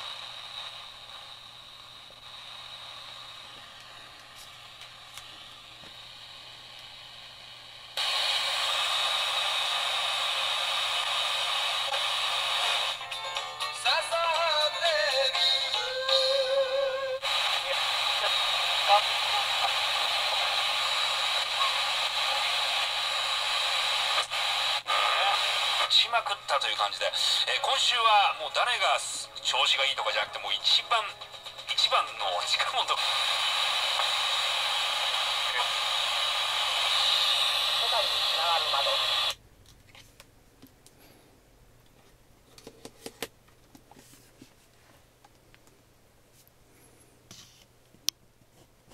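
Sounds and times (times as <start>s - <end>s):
radio static hiss: 0.0s - 13.2s, 13.8s - 39.4s
radio music and singing: 8.0s - 39.4s
voice on radio: 17.2s - 23.0s, 24.2s - 34.2s, 35.0s - 39.4s.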